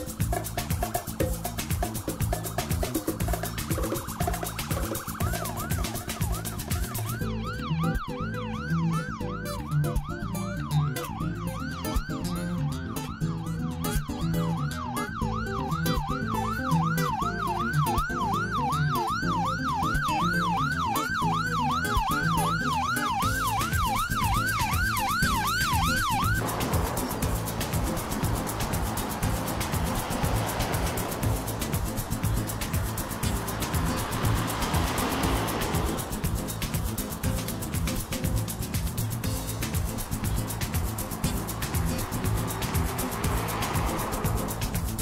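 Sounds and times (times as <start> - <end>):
music with low beat: 0.0 - 45.0
siren yelping: 2.0 - 35.1.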